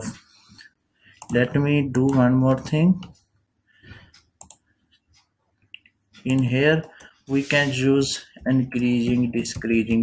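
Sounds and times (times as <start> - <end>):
sharp computer clicks: 4.4 - 4.6, 5.8 - 7.2.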